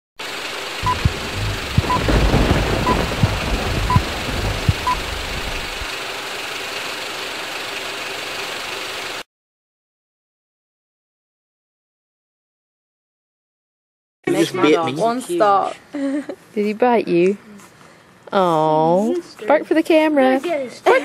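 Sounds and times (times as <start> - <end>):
steady hiss: 0.2 - 6.0
short even beeps: 0.8 - 2.1, 2.8 - 3.1, 3.7 - 5.8
low rumble: 0.8 - 5.9
sharp thumps: 0.8 - 5.9.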